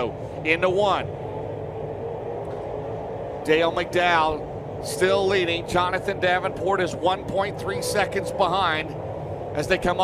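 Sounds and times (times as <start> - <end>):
race car engines droning: 0.0 - 10.0.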